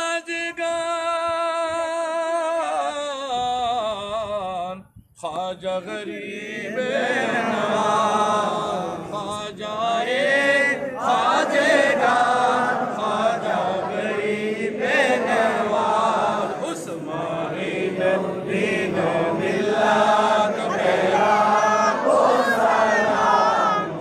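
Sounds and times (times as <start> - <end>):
men chanting in unison: 5.3 - 24.0.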